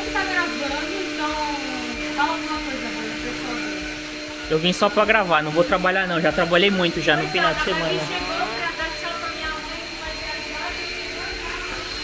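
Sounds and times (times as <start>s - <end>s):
stick vacuum cleaner running: 0.0s - 12.0s.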